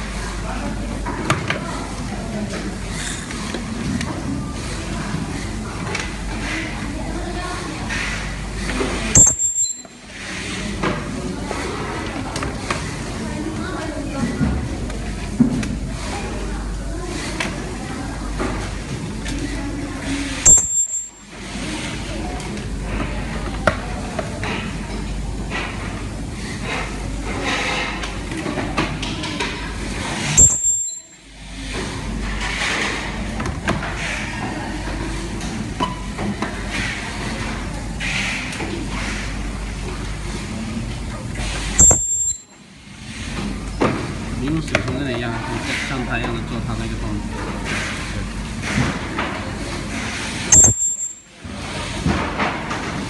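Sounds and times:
steady mechanical noise: 0.0s - 53.0s
sharp ringing clink: 41.8s - 42.5s, 50.6s - 51.2s.

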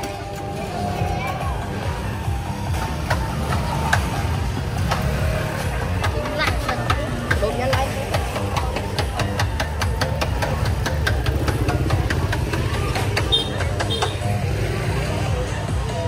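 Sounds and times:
music: 0.0s - 16.0s
voices: 0.0s - 16.0s.

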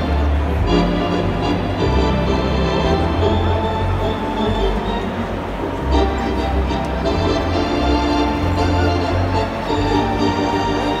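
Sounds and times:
organ playing held chords: 0.0s - 11.0s.

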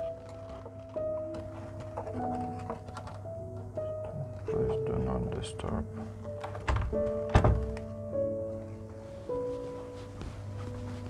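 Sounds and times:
background music: 0.0s - 11.0s
door handle thunk: 6.5s - 7.8s.

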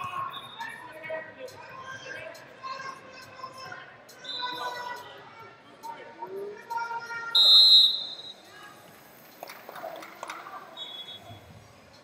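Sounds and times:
voices calling out in a hall: 0.0s - 12.0s
high-pitched whistle blast: 7.4s - 8.4s.

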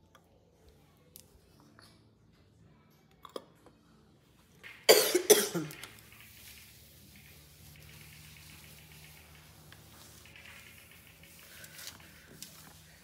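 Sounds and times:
woman coughing: 4.9s - 5.8s.

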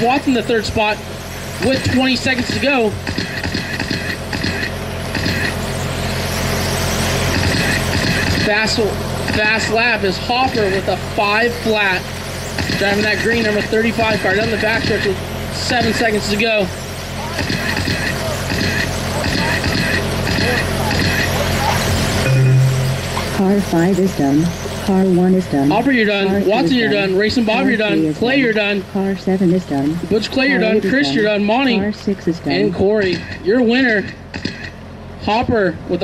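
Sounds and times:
hiss of cars running close: 0.0s - 22.2s
rc car motors whining: 0.0s - 22.3s
steady low hum: 0.0s - 36.0s.

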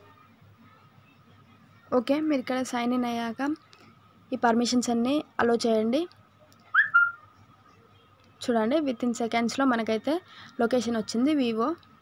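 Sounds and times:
whistle-like chirp: 6.7s - 7.2s.

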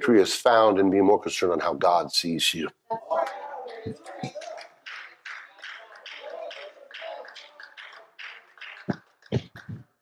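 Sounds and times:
quiet voice murmuring: 2.9s - 8.4s.

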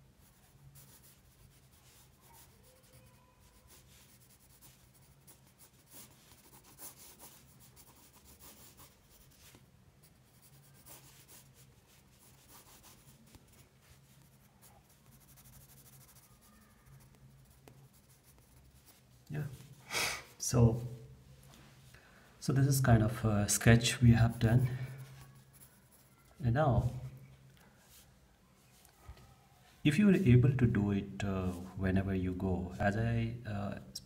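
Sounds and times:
pencil scratching on paper: 0.2s - 19.7s, 24.2s - 26.4s.

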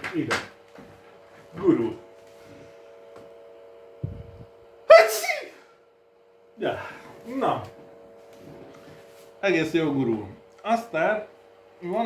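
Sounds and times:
faint steady hum: 0.0s - 12.0s
man sneezing: 4.9s - 5.7s.

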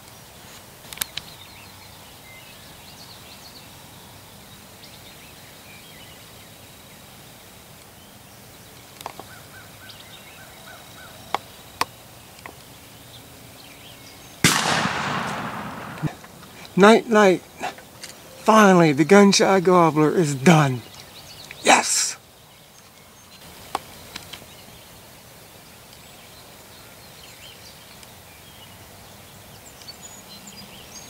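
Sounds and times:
faint field ambience: 0.0s - 31.0s
loud shotgun blast with echo: 14.4s - 16.6s.

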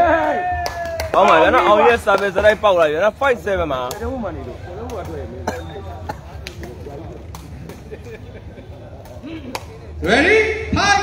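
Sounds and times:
low crowd chatter: 0.0s - 11.0s.

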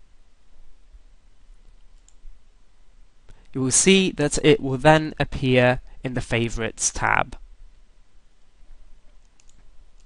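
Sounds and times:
low room hiss: 0.0s - 10.0s
computer mouse clicks: 1.6s - 2.3s, 9.1s - 10.0s.

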